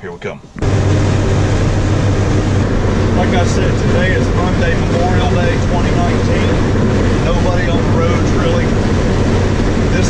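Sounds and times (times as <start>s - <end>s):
road and wind noise: 0.0s - 10.0s
truck engine drone: 0.5s - 10.0s.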